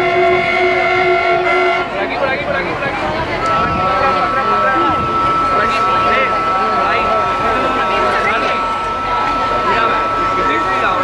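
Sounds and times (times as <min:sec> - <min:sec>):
train horn blast: 0:00.0 - 0:02.3, 0:03.4 - 0:11.0.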